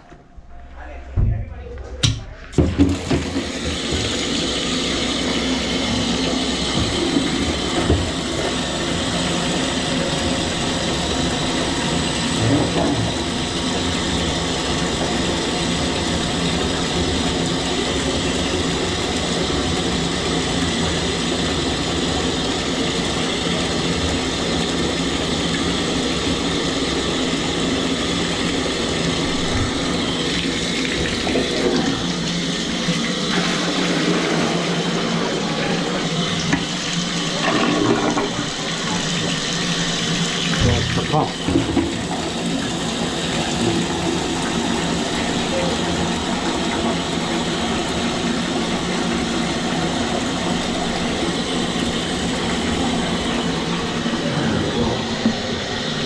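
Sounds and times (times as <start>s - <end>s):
water rushing in drain: 2.6s - 56.0s
steady hum: 25.9s - 56.0s.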